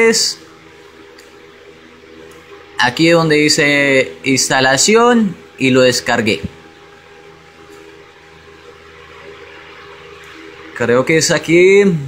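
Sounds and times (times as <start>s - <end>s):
man speaking: 0.0s - 0.5s, 2.8s - 6.6s, 10.8s - 12.0s
low background hum and hiss: 0.0s - 12.0s.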